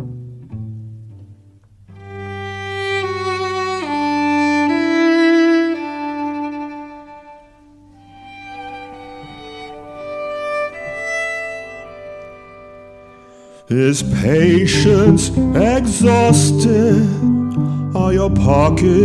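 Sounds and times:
bowed strings slow melody: 0:00.0 - 0:19.0.

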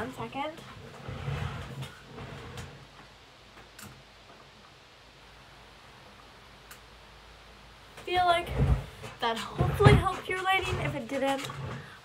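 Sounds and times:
rustling and soft knocks: 0:07.9 - 0:12.0.

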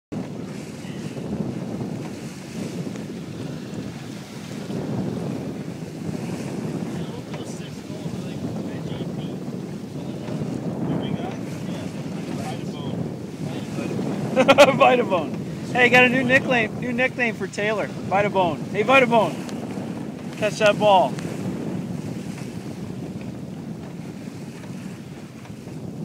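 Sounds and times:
water washing along hull: 0:00.1 - 0:26.0
wind buffeting microphone: 0:00.1 - 0:26.0.

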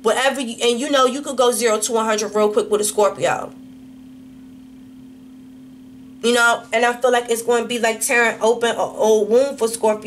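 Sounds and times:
steady hum: 0:00.0 - 0:10.0.

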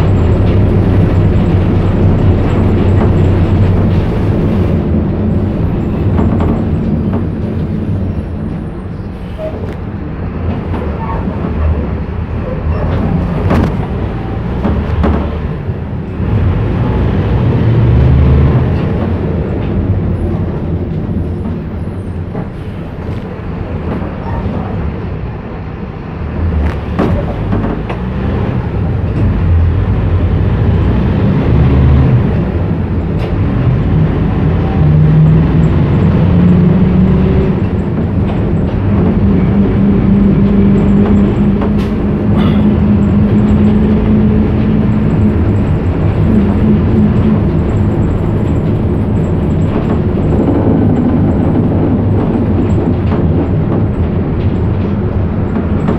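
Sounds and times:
moving vehicle rumble: 0:00.0 - 0:55.9.

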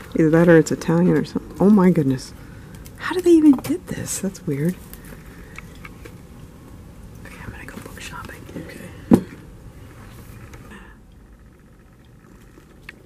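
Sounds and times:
person whispering: 0:07.2 - 0:09.0.

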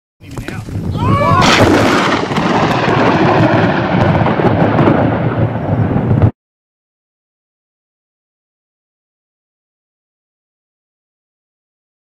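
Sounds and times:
thunder rumbling: 0:00.6 - 0:06.4.

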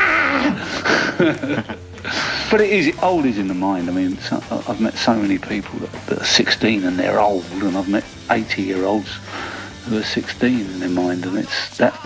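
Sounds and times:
person laughing: 0:00.0 - 0:02.5.

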